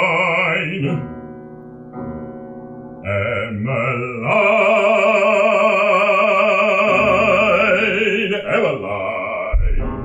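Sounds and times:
person singing: 0.0s - 1.2s, 3.0s - 10.0s
piano chords: 0.0s - 10.0s.

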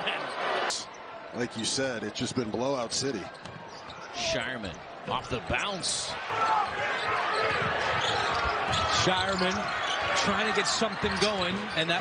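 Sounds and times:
arena crowd din: 0.0s - 12.0s.

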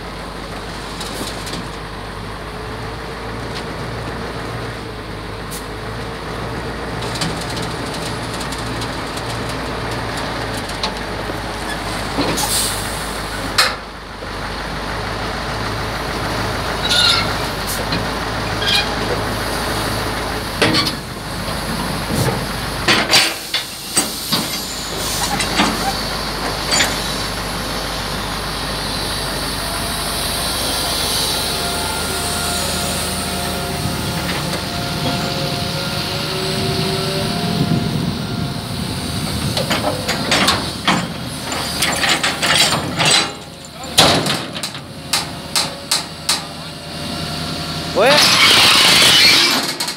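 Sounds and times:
diesel excavator engine running: 0.0s - 49.9s.

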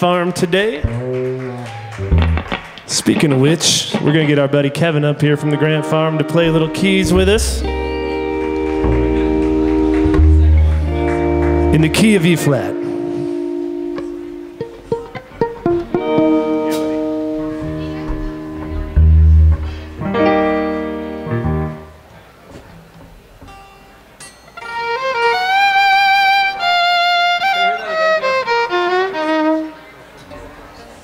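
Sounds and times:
deep bass note: 0.8s - 2.8s, 5.6s - 12.3s, 16.3s - 21.9s
held chords: 0.8s - 2.9s, 4.8s - 22.1s, 22.9s - 30.6s
fiddle bowing melody: 1.6s - 2.7s, 5.2s - 21.9s, 24.6s - 30.1s.

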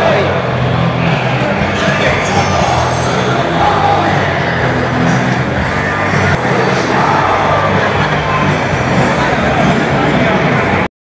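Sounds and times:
concert crowd noise: 0.0s - 10.9s
loud music over sound system: 0.0s - 10.9s.

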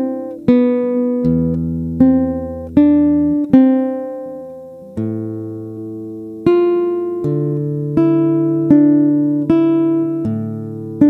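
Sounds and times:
classical guitar fingerstyle: 0.0s - 11.0s.

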